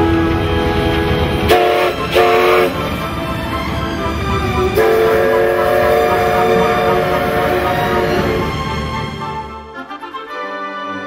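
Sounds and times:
steam whistle blasts: 0.0 - 8.6
steam hissing: 0.0 - 9.4.

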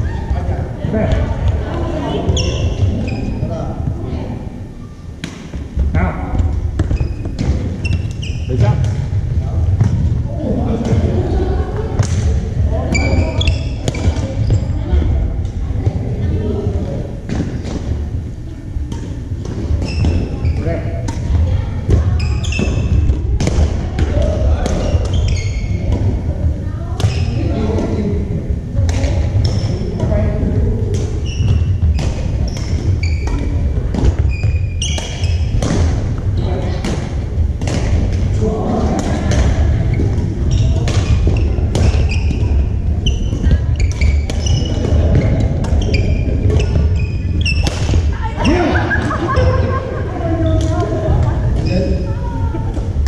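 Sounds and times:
sneakers squeaking on gym floor: 2.0 - 3.6, 6.7 - 9.0, 12.8 - 15.0, 18.9 - 26.3, 27.0 - 27.6, 28.9 - 29.8, 31.0 - 38.3, 39.4 - 49.8, 50.4 - 52.1.

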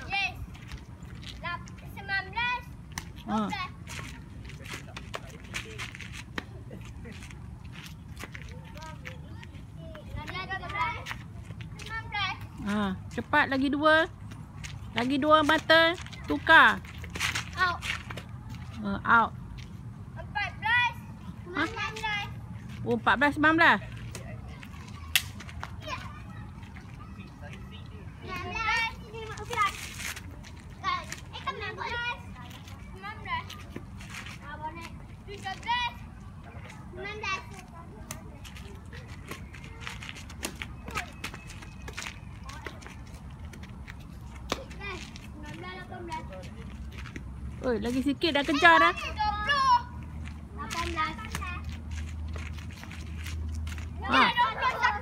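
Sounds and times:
footsteps: 2.8 - 20.0, 21.3 - 49.1, 49.8 - 55.0
child's voice: 8.5 - 12.6, 20.2 - 22.4, 25.7 - 29.8, 30.8 - 33.6, 44.5 - 46.5, 48.5 - 51.7, 54.0 - 55.0
children calling out: 54.0 - 55.0.

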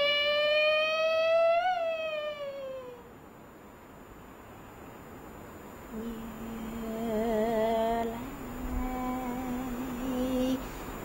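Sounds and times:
woman singing long opera note: 0.0 - 3.1, 5.9 - 10.8.

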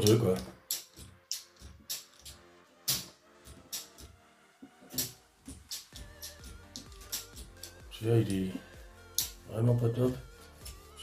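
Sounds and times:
circuit-breaker toggles clicking: 0.0 - 4.2, 4.9 - 8.4
quiet background music: 0.0 - 11.0.

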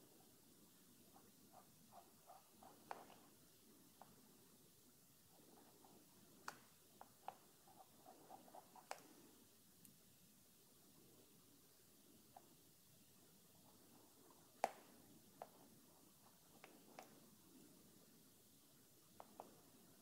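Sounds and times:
brush dabbing paint on canvas: 1.0 - 4.2, 5.3 - 9.4.

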